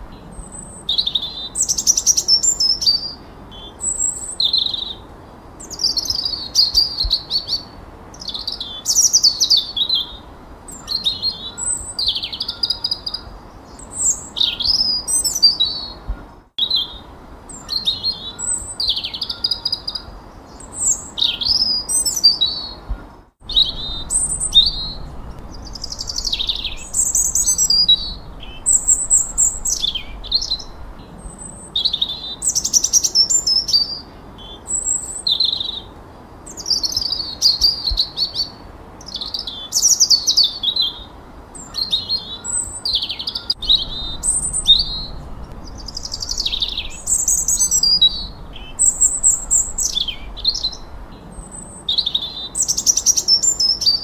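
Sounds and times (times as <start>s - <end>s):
songbird whistled phrases: 23.5s - 34.0s.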